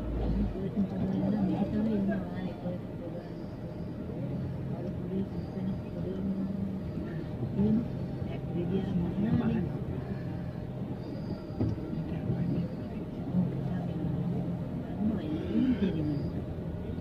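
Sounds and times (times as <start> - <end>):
vehicle engine humming: 0.0 - 17.0
voices of passers-by: 0.0 - 17.0.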